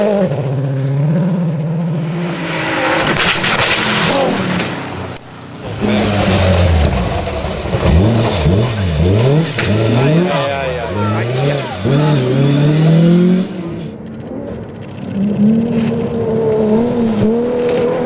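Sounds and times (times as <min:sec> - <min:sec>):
rally car engine revving: 0:00.0 - 0:18.0.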